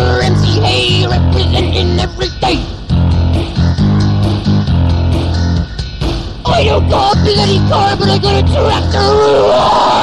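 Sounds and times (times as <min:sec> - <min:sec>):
guitar playing: 0:00.0 - 0:05.8, 0:06.5 - 0:09.1
bass guitar low notes: 0:00.0 - 0:09.1.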